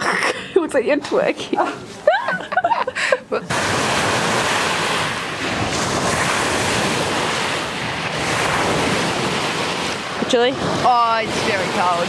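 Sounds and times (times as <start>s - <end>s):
waves washing on pebble shore: 3.5s - 12.0s
wind buffeting microphone: 3.5s - 12.0s.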